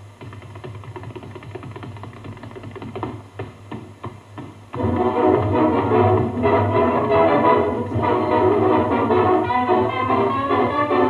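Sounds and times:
steady low hum: 0.0 - 11.0
tap shoes striking floor: 0.2 - 6.4.

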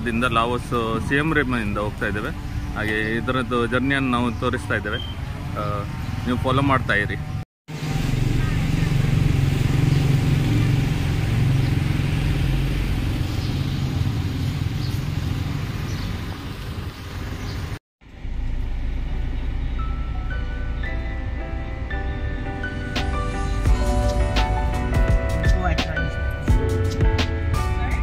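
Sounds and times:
minibus engine and road rumble: 0.0 - 28.0
street traffic rumble: 0.0 - 28.0
soft background music: 19.2 - 28.0.

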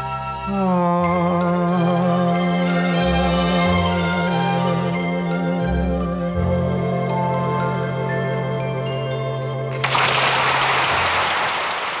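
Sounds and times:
music: 0.0 - 10.4.

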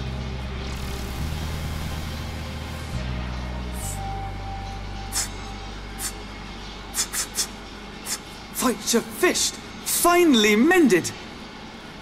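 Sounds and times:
low electronic hum: 0.0 - 12.0
short hisses: 5.1 - 5.4, 7.0 - 8.3.

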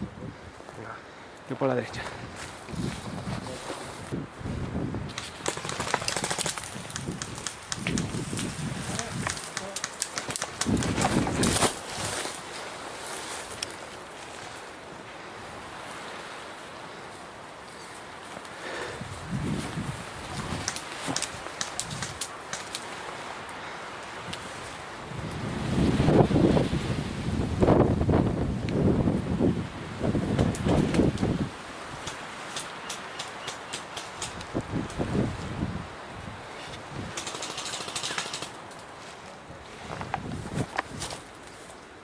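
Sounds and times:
leaves and branches rustling: 0.0 - 42.0
twigs crackling: 5.0 - 14.9, 17.1 - 25.5, 30.3 - 35.6, 36.2 - 41.9
sharp twig snaps: 6.5 - 11.0, 20.6 - 22.9.

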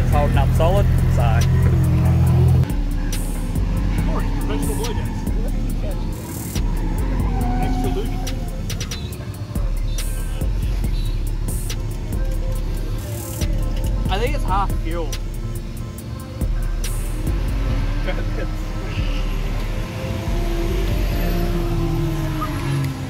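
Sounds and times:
background music: 0.0 - 23.0
car engine running: 0.0 - 23.0.

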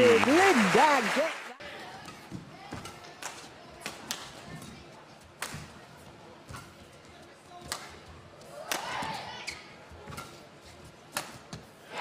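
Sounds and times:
arena background noise: 0.0 - 12.0.

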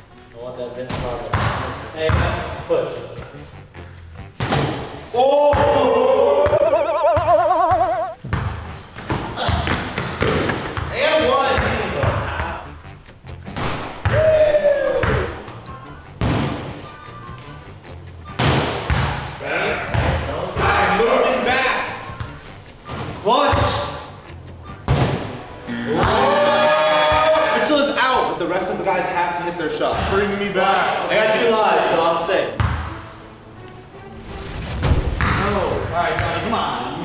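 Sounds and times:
music: 0.0 - 37.0
players shouting: 5.1 - 8.1, 25.7 - 28.0.

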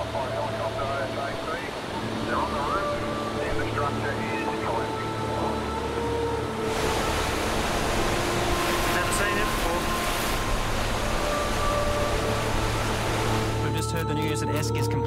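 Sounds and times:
rushing floodwater: 0.0 - 15.0
slow music with held notes: 0.0 - 15.0.

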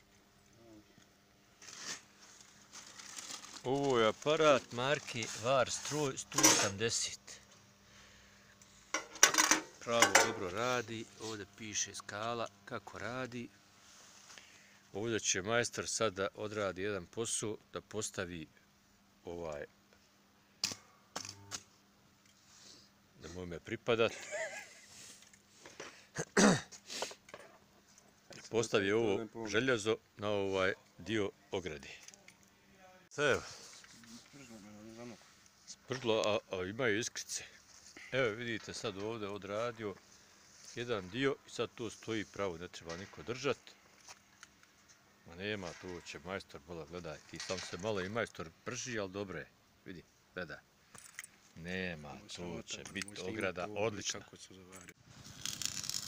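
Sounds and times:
person clearing throat: 26.2 - 26.8.

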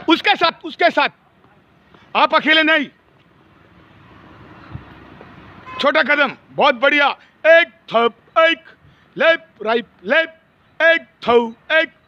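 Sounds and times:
distant traffic: 0.0 - 12.0.

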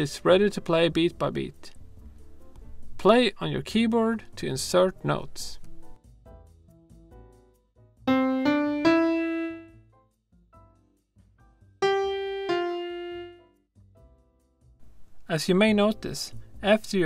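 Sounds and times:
piano notes: 8.1 - 9.8, 11.8 - 13.4.

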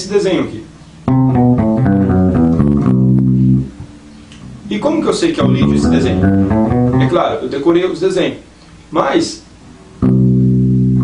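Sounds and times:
electric bass guitar scale: 1.1 - 7.5, 10.0 - 11.0.

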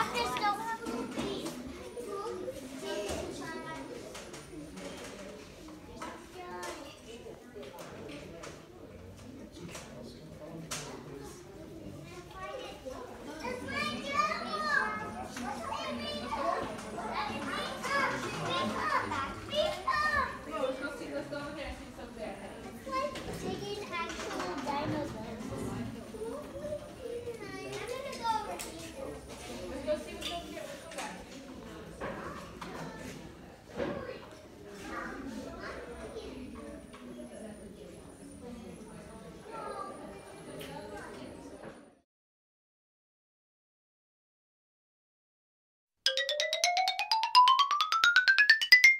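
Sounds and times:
children talking and calling out: 0.0 - 4.2, 12.1 - 20.8, 26.1 - 28.7
faint background voices: 0.0 - 41.7.

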